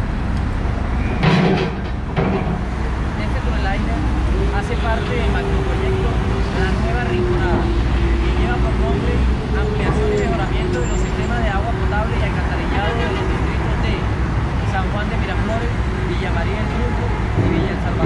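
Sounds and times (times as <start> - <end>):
road traffic rumble: 0.0 - 18.0
man talking: 3.2 - 18.0.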